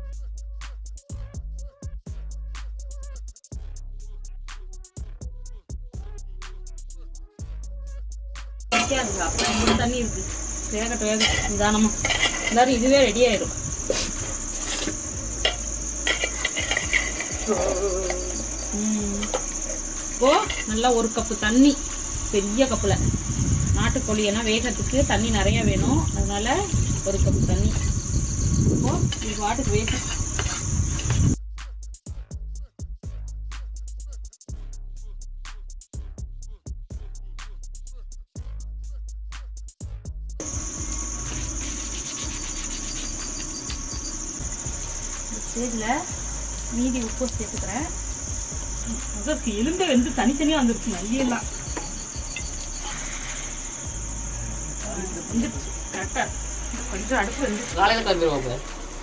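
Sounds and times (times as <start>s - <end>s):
music: 0.0s - 59.0s
metal ladle scraping steel pot: 8.7s - 9.9s, 11.1s - 12.7s, 14.0s - 18.2s, 20.3s - 20.7s
crickets chirping: 8.7s - 31.4s, 40.4s - 59.0s
person speaking: 17.4s - 19.4s.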